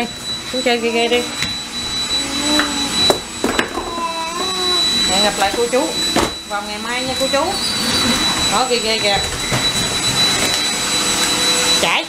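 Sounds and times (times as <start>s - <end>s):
robot vacuum whirring hum: 0.0s - 11.8s
high-pitched whine: 0.0s - 12.0s.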